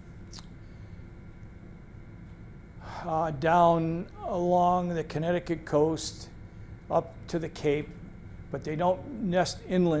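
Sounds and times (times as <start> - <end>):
low room hum: 0.0 - 10.0
man inhaling: 2.8 - 3.1.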